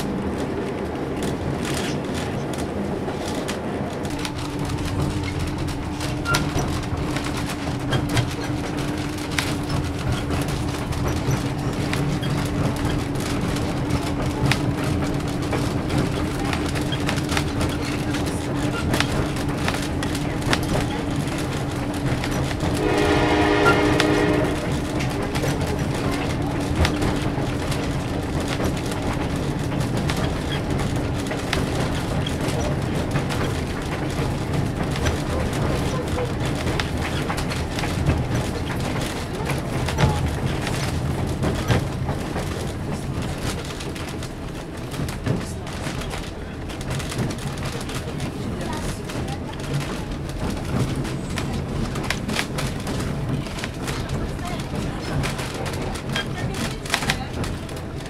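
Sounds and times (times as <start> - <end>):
train rumbling on rails: 0.0 - 58.0
train horn: 22.7 - 24.9.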